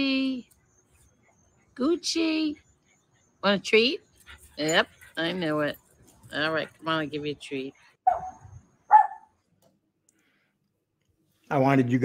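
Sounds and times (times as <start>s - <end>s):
small dog barking: 8.0s - 9.3s.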